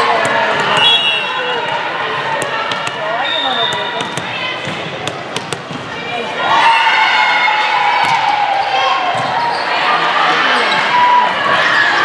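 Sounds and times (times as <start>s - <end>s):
chatter of people: 0.0s - 6.8s, 7.6s - 12.0s
volleyball bouncing on hard floor: 0.2s - 1.0s, 2.4s - 3.0s, 3.6s - 5.9s, 8.0s - 8.3s.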